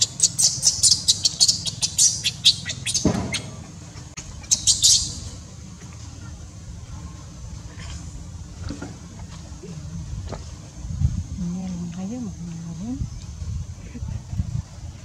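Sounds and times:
baby monkey squealing: 0:00.0 - 0:03.4.

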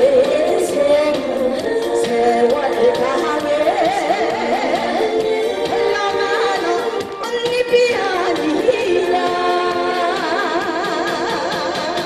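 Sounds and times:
musical accompaniment: 0:00.0 - 0:12.0
woman singing into a microphone: 0:00.0 - 0:12.0.

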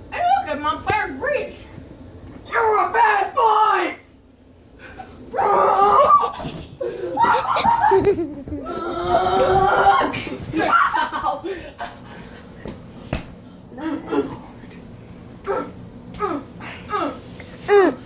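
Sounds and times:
people laughing: 0:06.9 - 0:09.0, 0:10.1 - 0:12.4.

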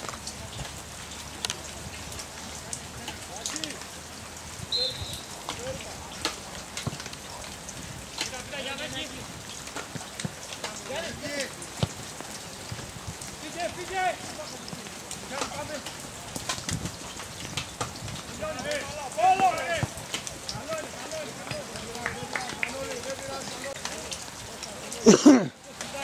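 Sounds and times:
distant shouts and calls: 0:04.7 - 0:06.2, 0:18.3 - 0:23.8.

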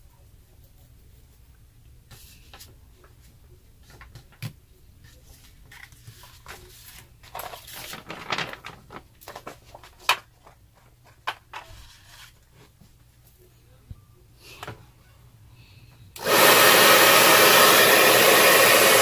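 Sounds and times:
paper rustling and crinkling: 0:02.1 - 0:12.8.

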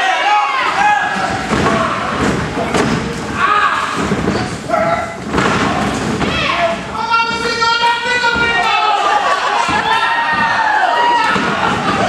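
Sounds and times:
bodies thudding on ring canvas: 0:00.8 - 0:06.8
people calling out: 0:03.3 - 0:12.0.

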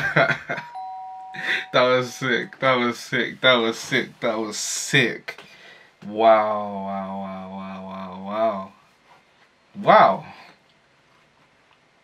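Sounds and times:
man laughing: 0:00.0 - 0:00.8, 0:01.4 - 0:02.8
two-note falling chime: 0:00.7 - 0:02.6.

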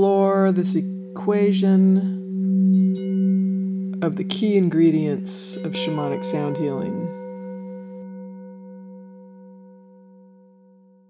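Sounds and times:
singing bowl ringing: 0:00.0 - 0:11.0.

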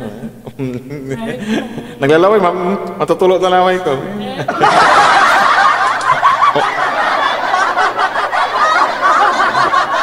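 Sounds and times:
snickering laughter and chatter: 0:04.3 - 0:10.0.

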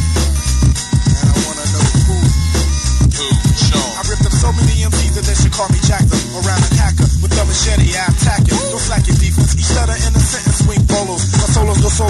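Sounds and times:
heavy bass: 0:00.0 - 0:12.0
rapping over a beat: 0:00.8 - 0:12.0.

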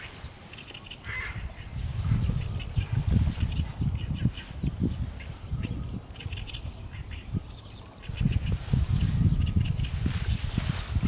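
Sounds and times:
crow cawing: 0:01.0 - 0:01.5.

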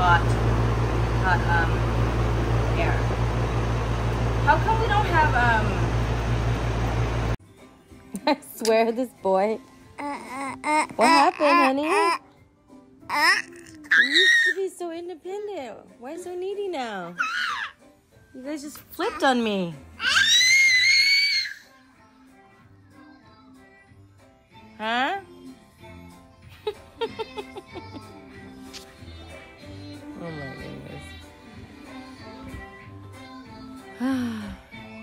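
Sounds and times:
air conditioner unit running: 0:00.0 - 0:07.4
toddler squealing: 0:13.1 - 0:14.6, 0:17.2 - 0:17.8, 0:20.0 - 0:21.7.

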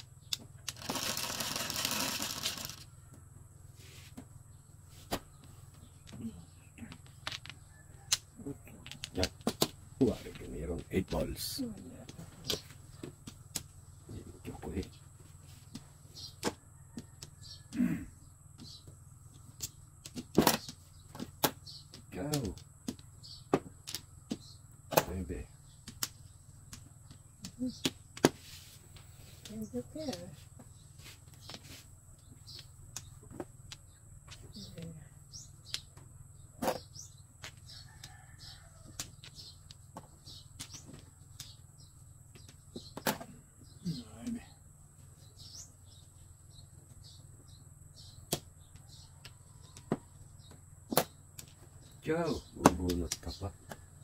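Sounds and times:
steady low hum: 0:00.0 - 0:54.0
mahjong tiles clacking on table: 0:00.7 - 0:02.8, 0:06.9 - 0:08.2, 0:08.8 - 0:09.7.

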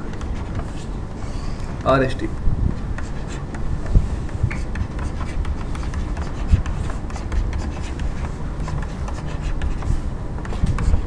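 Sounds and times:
low room hum: 0:00.0 - 0:11.0
pencil scratching while drawing: 0:03.0 - 0:03.6, 0:04.2 - 0:11.0.

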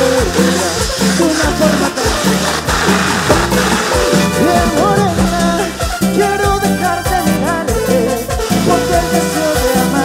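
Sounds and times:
live cumbia band music: 0:00.0 - 0:10.0.

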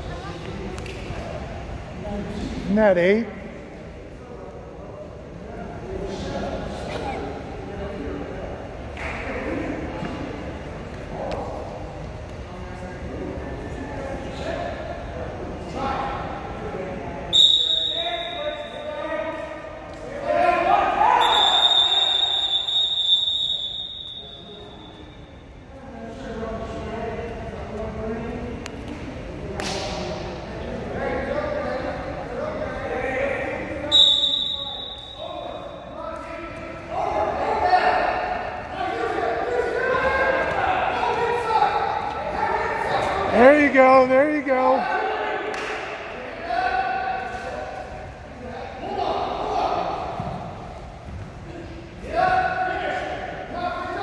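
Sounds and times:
referee's whistle blowing: 0:17.3 - 0:18.9, 0:21.2 - 0:25.2, 0:33.9 - 0:35.7
voices shouting in gym: 0:17.3 - 0:25.2.

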